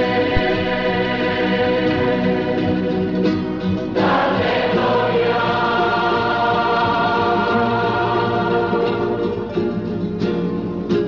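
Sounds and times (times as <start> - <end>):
choir singing a hymn: 0.0 - 9.9.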